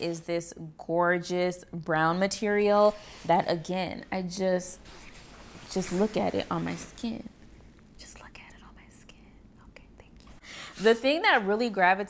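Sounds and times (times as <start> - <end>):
woman speaking: 0.0 - 4.8, 5.7 - 7.4, 10.7 - 12.0
woman whispering: 8.0 - 10.4.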